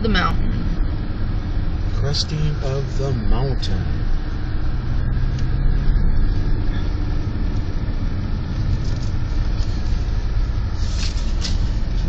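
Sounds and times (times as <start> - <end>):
car engine running: 0.0 - 12.0
road rumble: 0.0 - 12.0.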